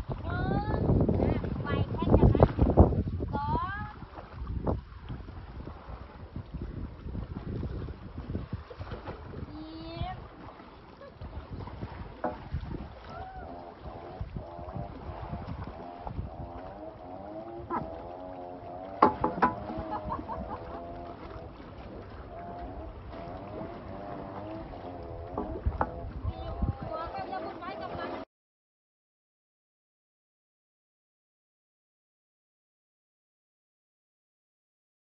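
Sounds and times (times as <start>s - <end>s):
water rumbling: 0.0s - 28.3s
wind: 0.0s - 28.3s
people talking and calling out: 26.2s - 28.2s.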